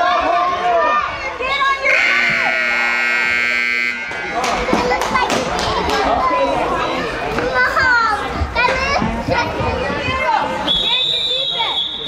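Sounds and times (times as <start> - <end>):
scoreboard buzzer blast: 1.9 - 4.3.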